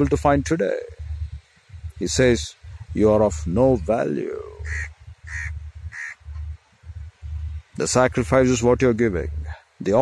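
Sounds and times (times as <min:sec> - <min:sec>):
low rumble: 0:00.0 - 0:10.0
bird calling: 0:04.4 - 0:06.6.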